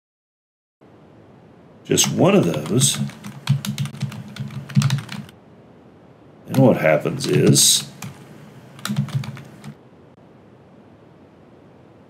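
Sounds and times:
computer keyboard typing: 2.0s - 5.3s, 6.5s - 9.8s.

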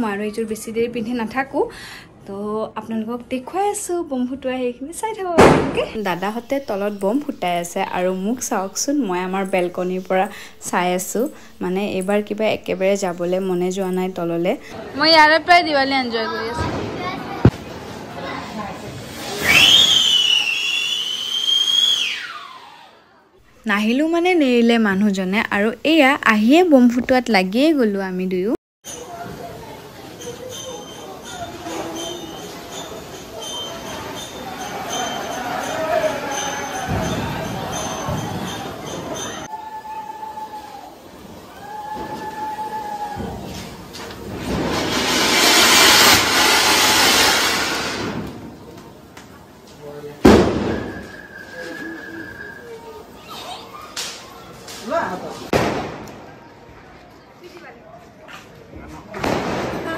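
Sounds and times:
firework fountain hissing: 17.5s - 22.2s, 39.5s - 53.2s
hiss of spraying sparks: 18.8s - 21.0s, 44.2s - 48.3s
firework high-pitched whistle: 18.8s - 23.0s, 30.2s - 43.3s, 44.5s - 48.3s, 50.2s - 53.4s.

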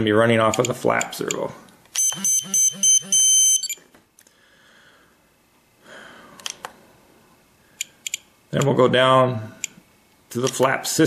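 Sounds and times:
transmitter warning beeps: 2.0s - 3.8s.

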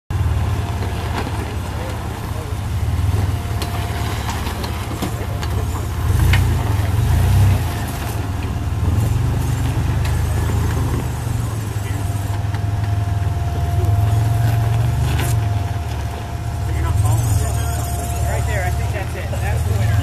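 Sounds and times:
tires knocking over stones: 0.1s - 20.0s
truck engine running low: 0.1s - 20.0s.

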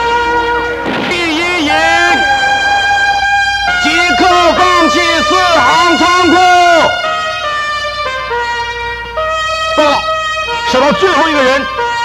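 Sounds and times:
trumpet playing slow held notes: 0.0s - 12.0s
voices: 0.9s - 7.0s.

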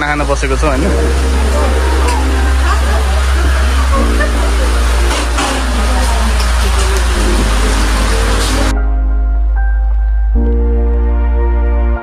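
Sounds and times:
people's voices: 0.0s - 8.7s
background music with deep bass: 0.0s - 12.0s.

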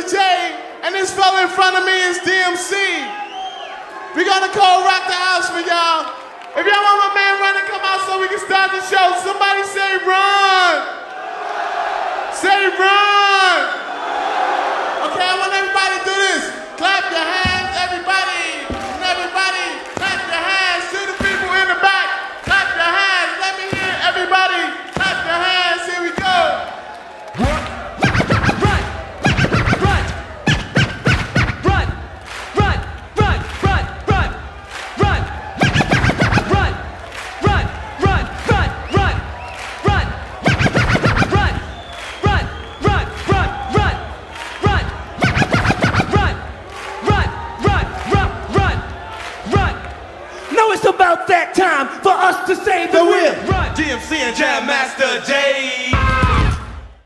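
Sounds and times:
turntable scratching: 27.4s - 34.4s, 35.0s - 44.0s, 44.6s - 49.6s
heavy hip-hop beat: 27.4s - 49.9s
person chanting rhythmically: 27.4s - 51.1s.

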